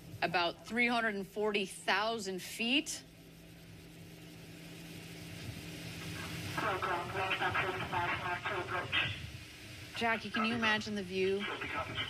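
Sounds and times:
faint hiss: 0:00.0 - 0:12.0
steady low hum: 0:00.0 - 0:12.0
indistinct voices: 0:10.0 - 0:12.0.

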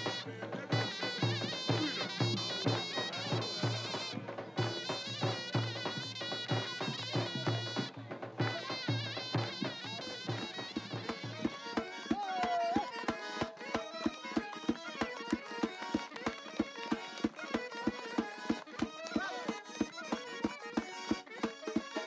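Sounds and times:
sliding melody instrument: 0:00.0 - 0:22.0.

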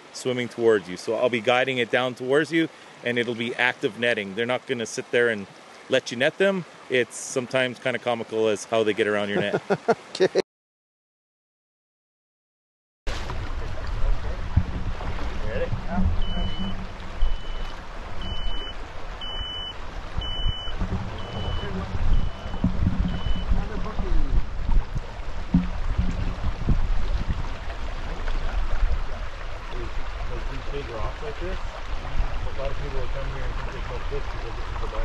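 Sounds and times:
shallow stream rushing: 0:00.0 - 0:10.4, 0:13.1 - 0:35.0
splashing of wading: 0:09.2 - 0:10.4, 0:13.1 - 0:35.0
short warning beeps: 0:16.2 - 0:23.7.

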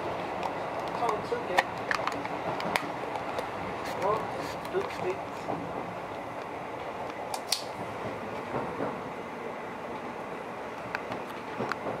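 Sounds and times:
train running inside carriage: 0:00.0 - 0:12.0.

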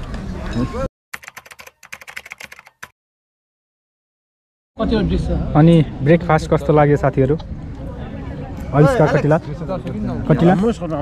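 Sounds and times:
computer keyboard typing: 0:01.2 - 0:02.9
voices chatting: 0:04.8 - 0:11.0.

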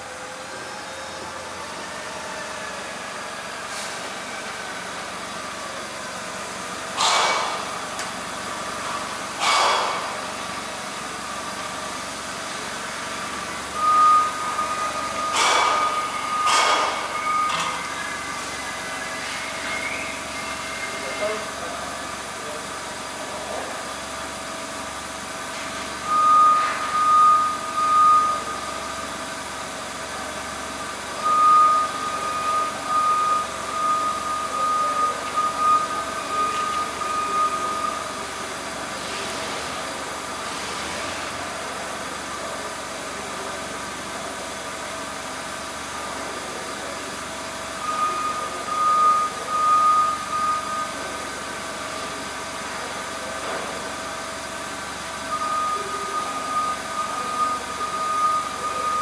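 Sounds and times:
forklift engine idling: 0:00.0 - 0:59.0
high pulsing warning beep: 0:11.3 - 0:22.2, 0:25.6 - 0:38.8, 0:47.6 - 0:59.0.

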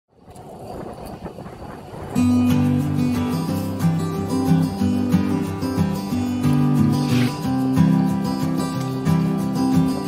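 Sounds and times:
bike road noise: 0:00.1 - 0:10.0
rushing wind: 0:00.1 - 0:10.0.

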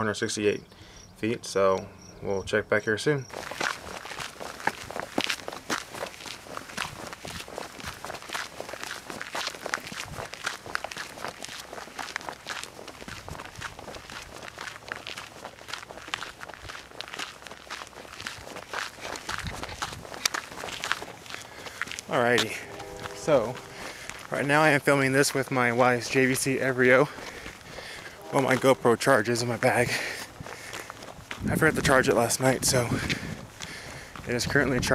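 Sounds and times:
footsteps on gravel trail: 0:03.2 - 0:34.9.

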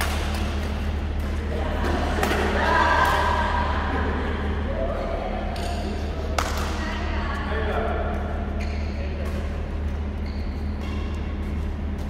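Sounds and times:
racket hitting shuttlecock: 0:00.0 - 0:03.3
low hall hum: 0:00.0 - 0:12.0.

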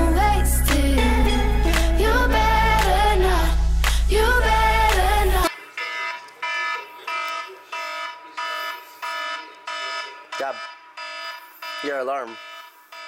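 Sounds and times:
music track: 0:00.0 - 0:05.5
electronic alarm tone: 0:05.8 - 0:13.0.

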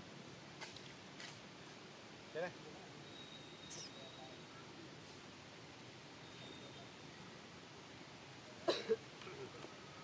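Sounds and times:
sharp cough-like sound: 0:08.6 - 0:09.0.

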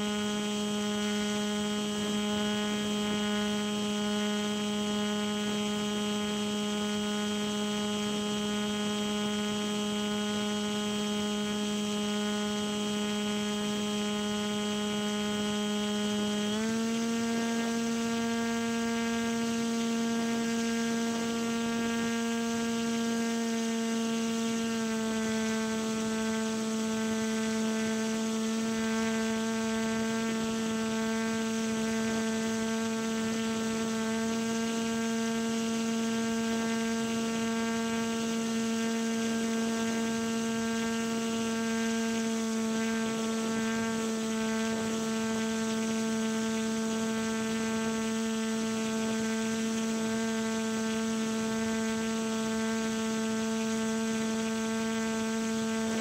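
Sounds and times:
model aircraft motor humming: 0:00.0 - 0:56.0.

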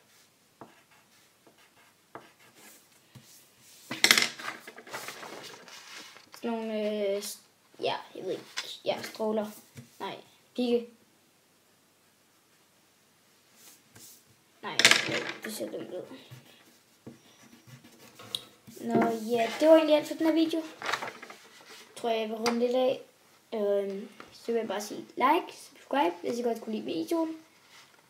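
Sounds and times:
pen scratching on paper: 0:00.6 - 0:02.8
drawing supplies clattering on desk: 0:03.9 - 0:06.4, 0:14.8 - 0:15.9.

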